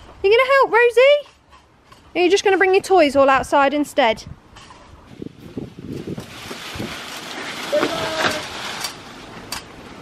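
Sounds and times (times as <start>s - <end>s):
rustling of leaves: 4.5s - 10.0s
hand saw cutting branches: 6.4s - 9.7s.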